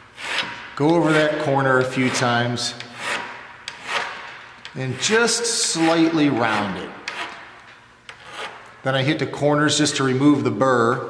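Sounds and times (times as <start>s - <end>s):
file scraping aluminium: 0.2s - 7.5s, 8.1s - 8.6s.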